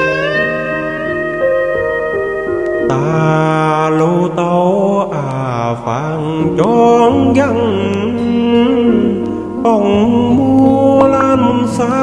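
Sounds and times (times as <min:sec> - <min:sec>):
backing track: 0:00.0 - 0:12.0.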